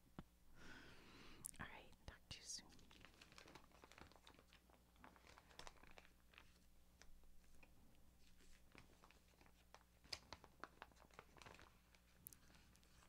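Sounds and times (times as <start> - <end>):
faint whisper: 1.4 - 3.0.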